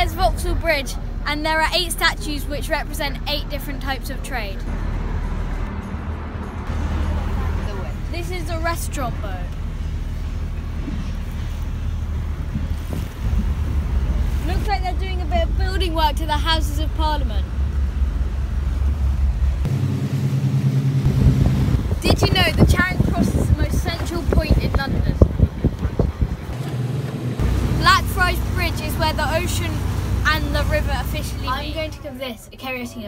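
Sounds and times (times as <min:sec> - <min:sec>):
boy's voice: 0:00.0 - 0:04.7, 0:07.7 - 0:09.5, 0:14.4 - 0:17.5, 0:22.0 - 0:25.4, 0:27.8 - 0:33.0
boat engine rumble: 0:00.0 - 0:33.0
water rushing past hull: 0:09.6 - 0:31.5
wind buffeting microphone: 0:10.2 - 0:19.7, 0:21.0 - 0:31.9.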